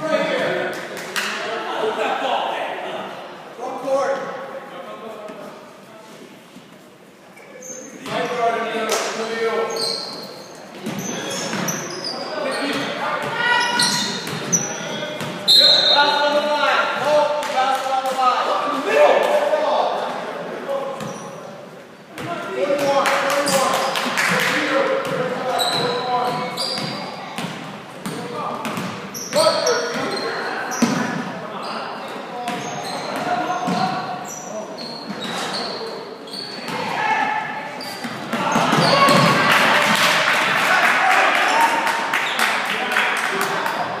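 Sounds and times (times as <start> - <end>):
sneakers squeaking: 7.3 - 8.6, 9.3 - 17.1, 20.9 - 23.9, 25.0 - 39.4
people calling and shouting: 7.4 - 44.0
basketball bouncing on court: 25.0 - 30.2, 38.0 - 39.4.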